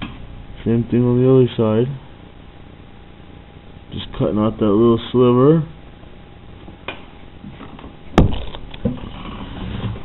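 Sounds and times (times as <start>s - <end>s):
dull thump: 8.2s - 9.0s.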